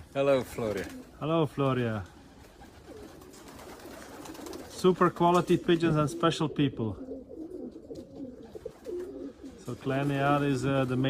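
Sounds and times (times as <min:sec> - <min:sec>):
pigeons cooing: 0:00.3 - 0:01.2, 0:02.1 - 0:11.0.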